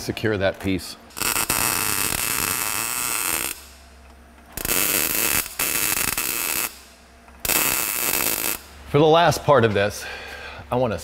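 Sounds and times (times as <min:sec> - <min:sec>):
welder arc crackling: 0:01.1 - 0:03.9, 0:04.5 - 0:08.7.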